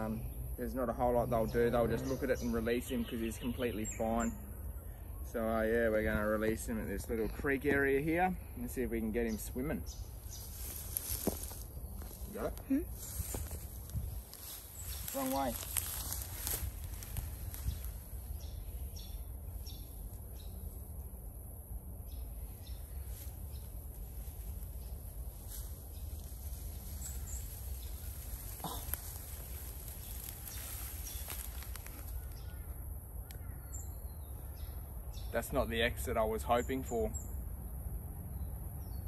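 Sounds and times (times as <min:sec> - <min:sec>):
rustles in dry grass: 0:09.2 - 0:33.6
wind rumble on microphone: 0:12.9 - 0:20.7.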